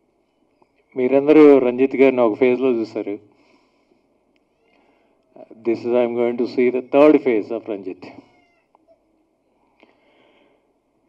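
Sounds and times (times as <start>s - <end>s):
man speaking into a microphone: 1.0s - 3.3s, 5.4s - 8.3s
faint clicks: 4.3s - 5.4s.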